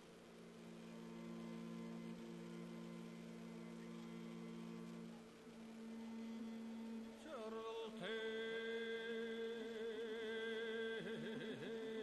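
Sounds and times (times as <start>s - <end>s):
man chanting a low note: 6.4s - 12.0s.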